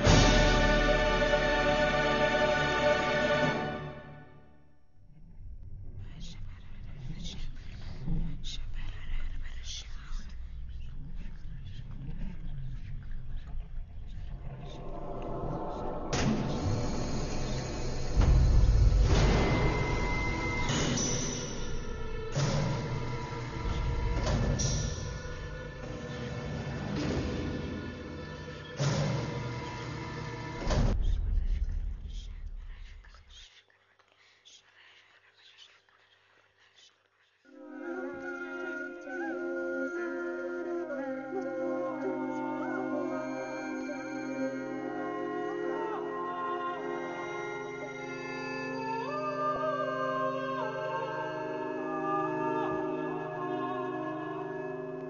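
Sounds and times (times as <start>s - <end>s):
low steady drone: 5.0s - 33.1s
low rumble: 5.0s - 33.5s
person whispering: 5.2s - 18.3s, 30.9s - 54.8s.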